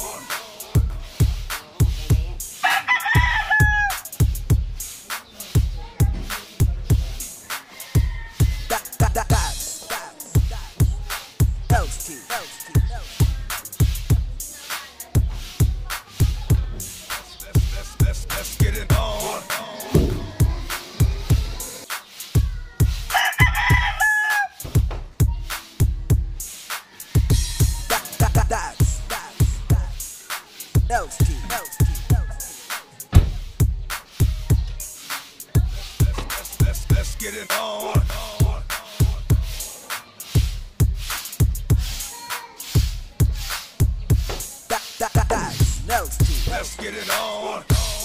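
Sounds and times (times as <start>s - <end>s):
hip-hop music with kick drum: 0.0s - 48.0s
rooster crowing: 2.6s - 4.0s, 7.5s - 9.1s, 12.0s - 13.5s, 23.1s - 24.6s, 26.8s - 28.3s, 31.0s - 32.7s.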